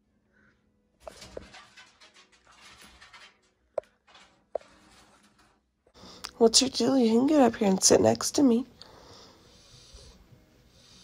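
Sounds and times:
animal scratching inside stove: 0:01.0 - 0:06.0, 0:09.4 - 0:11.0.

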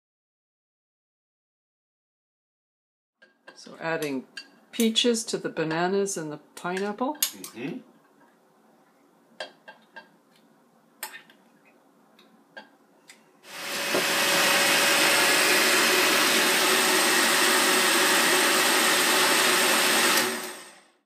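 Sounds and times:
blender blending fruit: 0:13.5 - 0:21.0.

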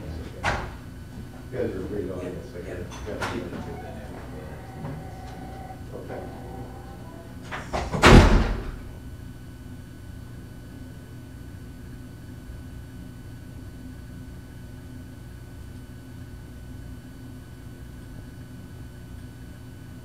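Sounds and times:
room hum: 0:00.0 - 0:20.0
door shutting thud: 0:03.2 - 0:08.8.

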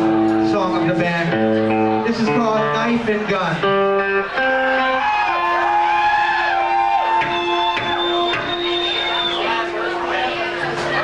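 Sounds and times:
electric guitar with bending notes: 0:00.0 - 0:11.0.

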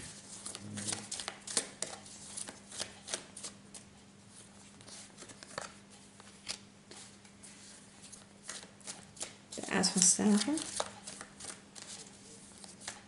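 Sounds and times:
cards shuffling: 0:00.3 - 0:03.8, 0:04.8 - 0:07.3, 0:08.0 - 0:13.0.

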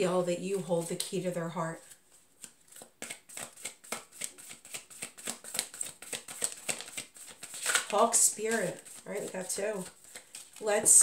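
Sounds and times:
cards being shuffled by hand: 0:01.8 - 0:11.0.

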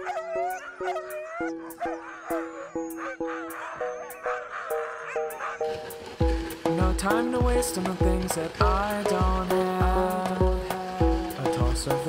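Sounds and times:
huskies howling and yelping: 0:00.0 - 0:06.0
background music with even beat: 0:00.0 - 0:12.0.

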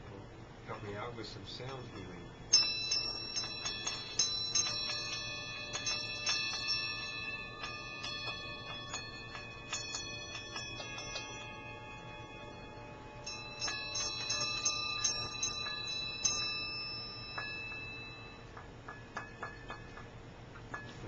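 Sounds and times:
small metal bells ringing: 0:00.6 - 0:20.1.

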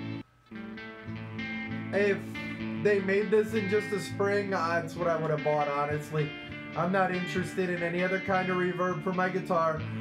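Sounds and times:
guitar notes with reverb: 0:00.0 - 0:10.0.

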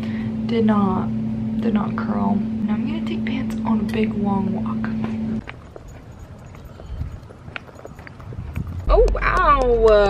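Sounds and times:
footsteps on concrete: 0:05.0 - 0:10.0.

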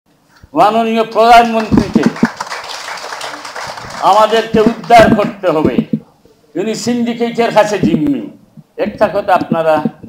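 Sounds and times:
audience applauding: 0:01.2 - 0:05.3.

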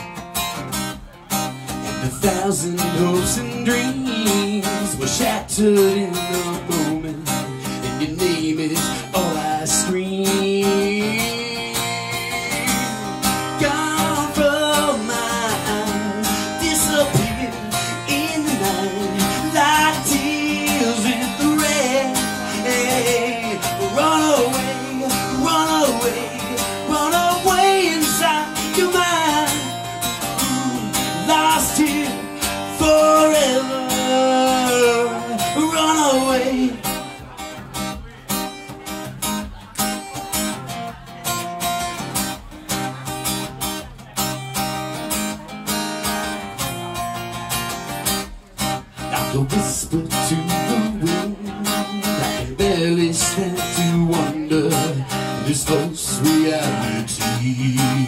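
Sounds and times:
strummed acoustic guitar: 0:00.0 - 0:58.0
man singing rock ballad: 0:01.7 - 0:38.4, 0:48.6 - 0:58.0.

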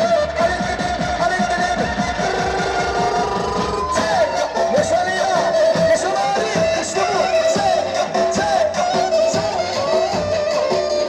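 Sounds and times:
drum beating fast: 0:00.0 - 0:11.0.

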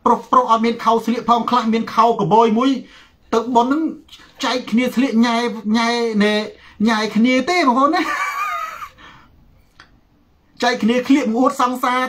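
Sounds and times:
man laughing high-pitched: 0:08.0 - 0:09.0.

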